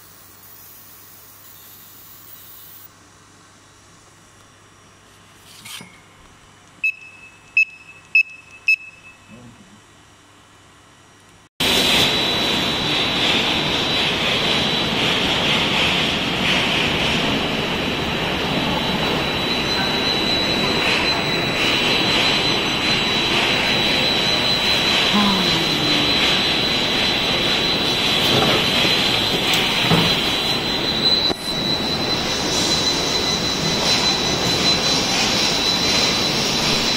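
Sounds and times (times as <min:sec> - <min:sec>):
machine noise with high whine: 0:00.0 - 0:36.9
short electronic beeps: 0:06.8 - 0:09.4.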